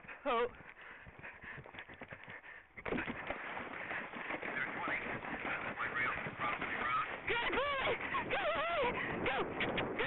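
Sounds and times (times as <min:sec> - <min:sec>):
horse hoofbeats: 0:00.0 - 0:10.0
wind rushing: 0:04.7 - 0:10.0.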